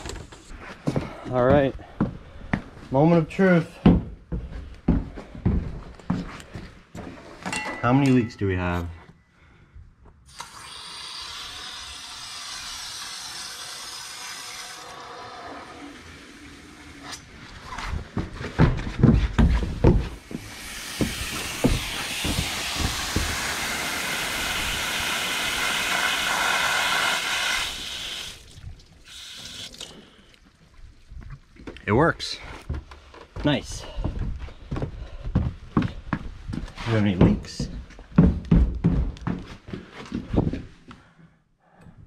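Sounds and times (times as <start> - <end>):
water rushing through pipe: 10.3 - 17.3, 20.2 - 30.4
heavy footfalls: 17.8 - 23.5, 32.7 - 40.7
water running from tap: 20.4 - 30.0.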